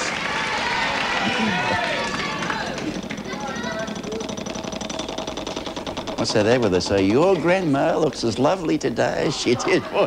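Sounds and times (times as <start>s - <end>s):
studio audience noise: 0.0s - 4.5s
prize wheel clicking: 0.6s - 8.8s
voices talking: 1.1s - 4.4s.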